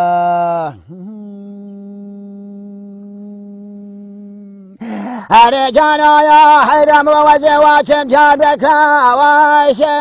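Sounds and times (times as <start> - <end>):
man humming a held note: 0.0 - 5.6.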